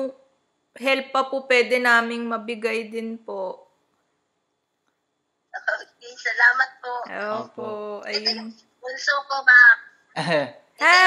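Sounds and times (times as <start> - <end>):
person's voice: 5.6 - 8.5, 9.4 - 11.0.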